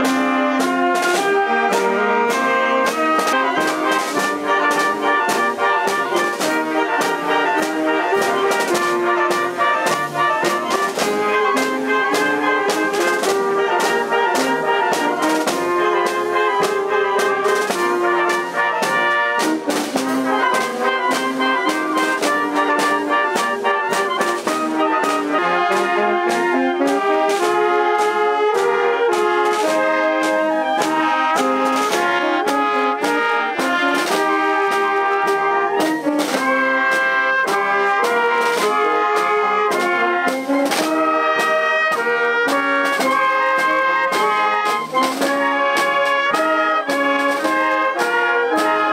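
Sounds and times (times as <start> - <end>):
brass and woodwinds playing tune: 0.0 - 48.9
snare and bass drum beat: 0.0 - 48.9.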